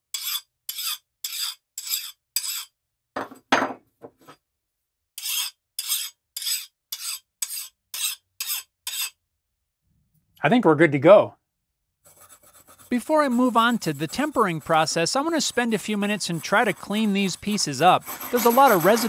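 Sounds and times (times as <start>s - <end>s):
steel file scraping metal: 0.1s - 2.8s, 5.2s - 9.2s, 12.1s - 19.0s.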